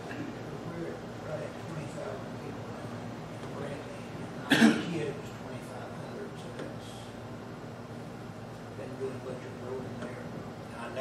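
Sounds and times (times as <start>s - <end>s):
person coughing: 4.5s - 5.0s.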